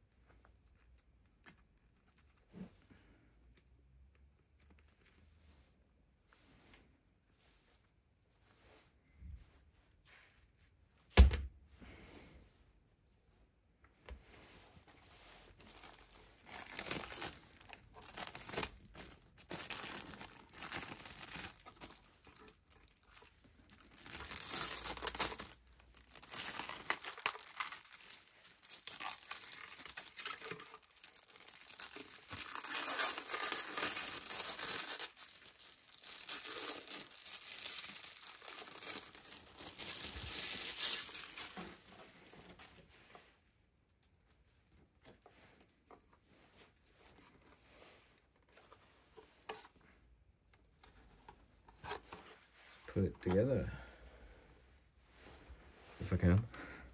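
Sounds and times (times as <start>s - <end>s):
plastic wrap crinkling and tearing: 15.5s - 42.8s.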